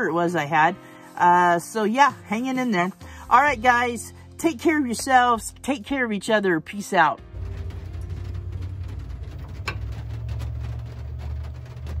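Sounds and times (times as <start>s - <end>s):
propane heater rumbling: 7.1s - 12.0s.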